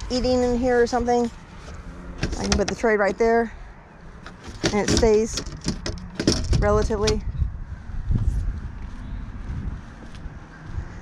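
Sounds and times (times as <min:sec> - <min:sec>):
wind buffeting microphone: 0:00.0 - 0:11.0
low rumble: 0:06.0 - 0:11.0.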